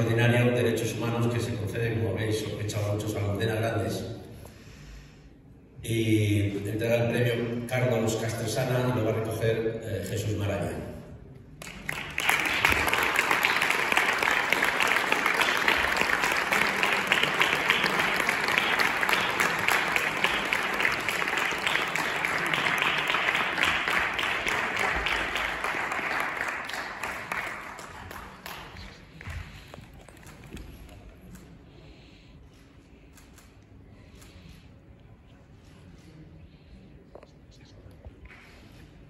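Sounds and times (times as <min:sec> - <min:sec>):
audience applauding: 0:11.6 - 0:30.6.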